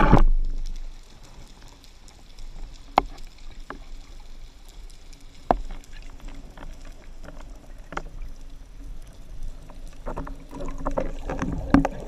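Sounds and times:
underwater rumble: 0:00.0 - 0:12.0.

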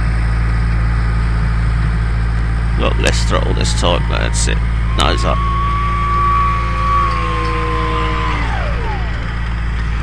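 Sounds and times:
low rumble: 0:00.0 - 0:10.0
electric motor and propeller whining: 0:01.0 - 0:10.0.

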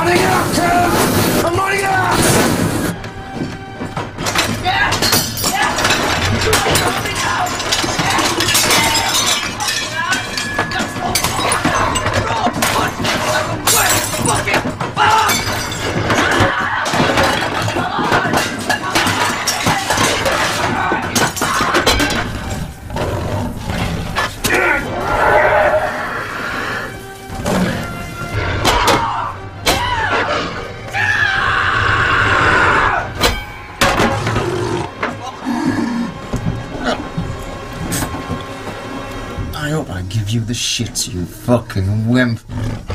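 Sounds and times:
people grunting and straining: 0:00.0 - 0:39.4
crockery and glass smashing: 0:04.2 - 0:22.8.

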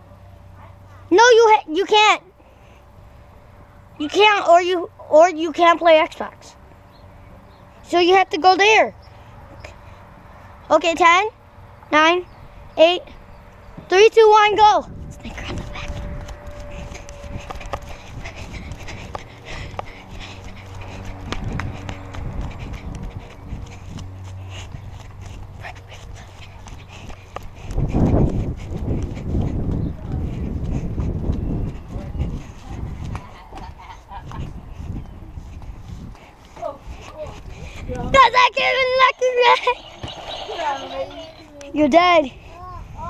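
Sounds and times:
wind buffeting microphone: 0:12.3 - 0:43.0.

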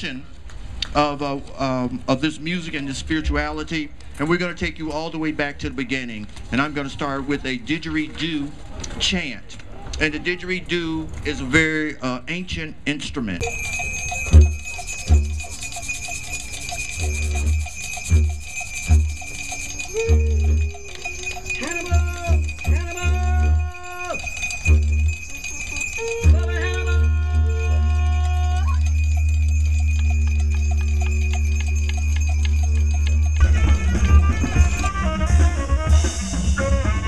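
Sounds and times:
didgeridoo drone: 0:13.4 - 0:37.0.

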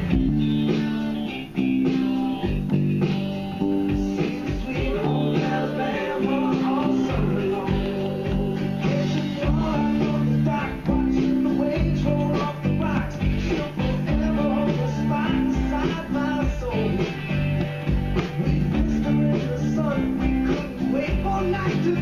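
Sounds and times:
background music: 0:00.0 - 0:22.0
electric bass guitar: 0:00.0 - 0:22.0.

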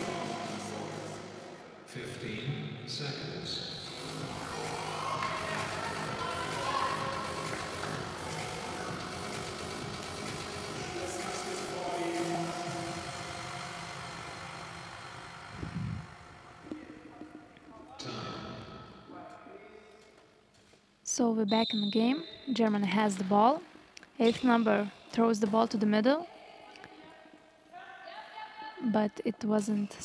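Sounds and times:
music: 0:00.0 - 0:01.8, 0:03.6 - 0:16.7
indistinct voices: 0:00.0 - 0:19.4.

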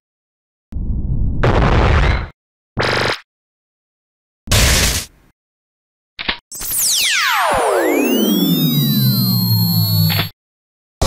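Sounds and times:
synthesized laser beam effect: 0:06.5 - 0:10.3.

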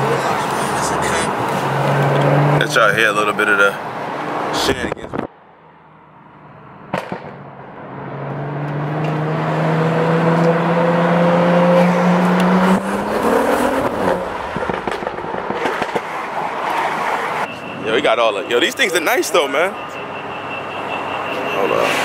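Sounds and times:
car engine accelerating: 0:00.0 - 0:05.3, 0:06.3 - 0:17.1.

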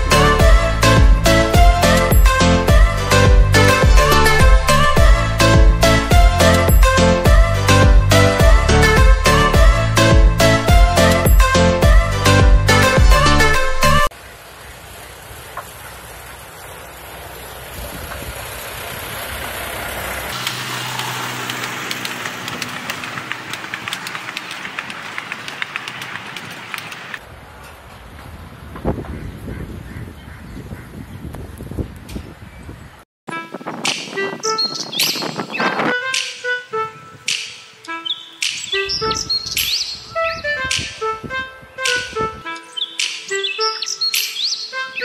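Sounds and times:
music: 0:00.0 - 0:14.1, 0:33.3 - 0:45.0.

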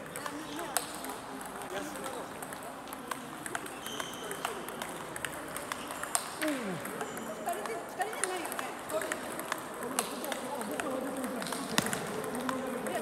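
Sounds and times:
sharp clicks from neighbouring tables: 0:00.0 - 0:13.0
table tennis balls clicking: 0:00.0 - 0:13.0.

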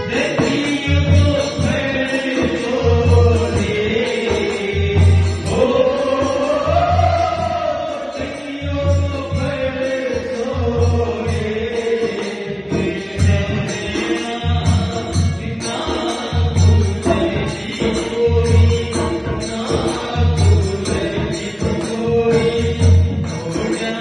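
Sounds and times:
barrel drum beat: 0:00.0 - 0:07.7
man singing into microphone: 0:00.0 - 0:24.0.

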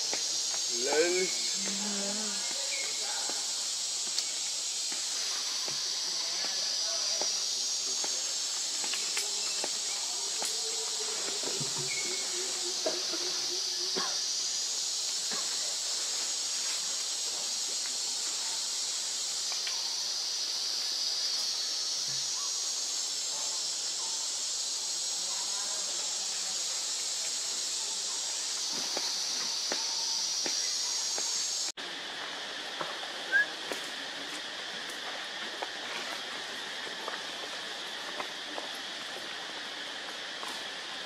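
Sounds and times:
high-pitched insect chorus: 0:00.0 - 0:41.0.

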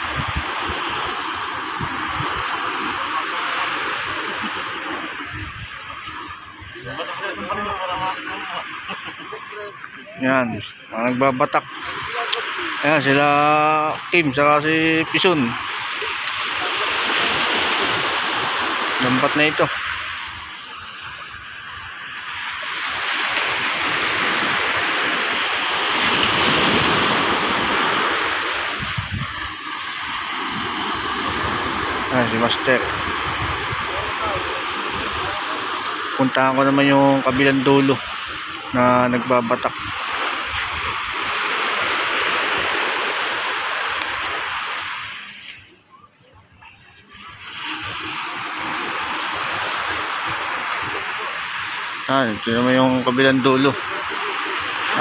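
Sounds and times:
seawater rushing: 0:00.0 - 0:55.0
wave washing onto shore: 0:00.0 - 0:55.0.

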